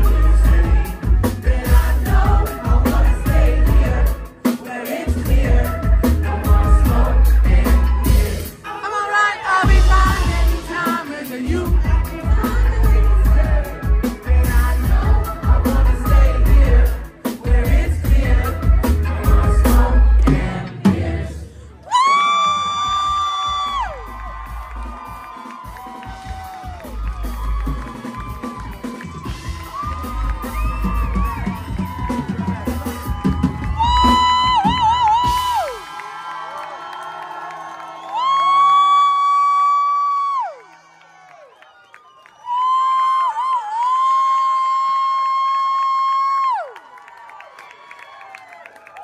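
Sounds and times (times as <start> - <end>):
band playing: 0.0 - 36.5
crowd cheering and whooping: 7.5 - 10.6, 21.7 - 49.0.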